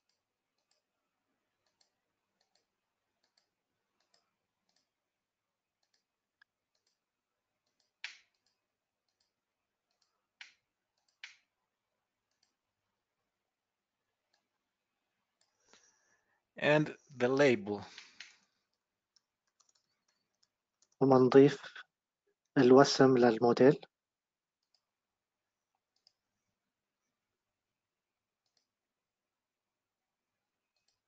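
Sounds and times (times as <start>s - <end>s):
computer mouse clicking: 0.0s - 0.9s, 1.5s - 5.0s, 5.8s - 11.5s, 12.2s - 12.6s, 14.3s - 14.6s, 15.4s - 15.9s, 17.8s - 21.1s, 24.6s - 24.9s, 25.8s - 26.2s, 28.4s - 28.7s, 30.7s - 31.0s.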